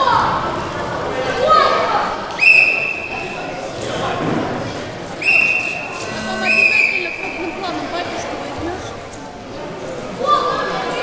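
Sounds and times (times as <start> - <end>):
crowd voices: 0.0 - 11.0
referee's whistle blasts: 2.4 - 3.4, 5.2 - 7.4.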